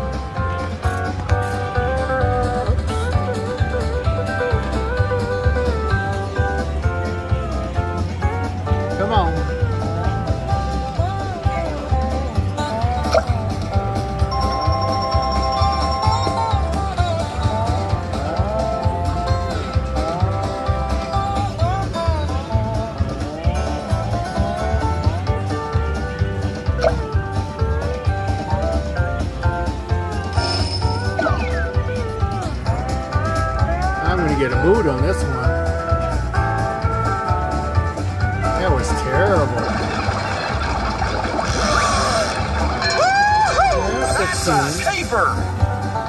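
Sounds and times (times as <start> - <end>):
slot machine country-style music: 0.0 - 46.0.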